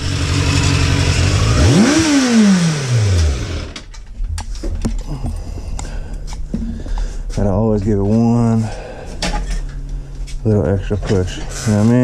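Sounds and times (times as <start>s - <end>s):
motorcycle engine revving: 0.0s - 3.9s.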